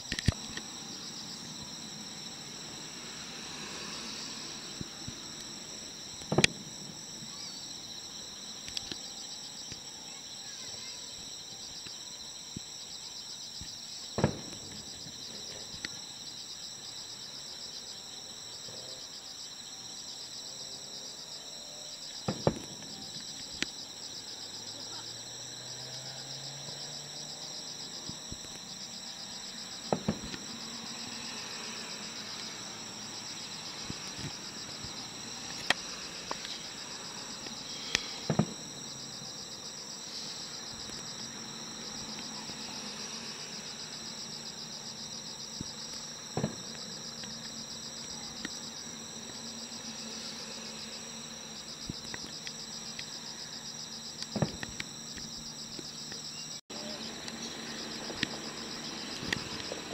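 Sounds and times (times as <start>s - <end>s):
insects chirring: 0.0s - 59.9s
distant fireworks bangs: 6.2s - 7.4s, 14.1s - 15.9s, 22.2s - 23.7s, 29.8s - 32.7s, 37.9s - 38.9s, 45.6s - 47.0s.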